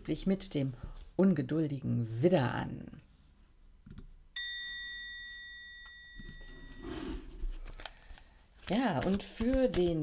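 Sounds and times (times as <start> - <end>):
bright chime ringing: 4.4 - 7.0.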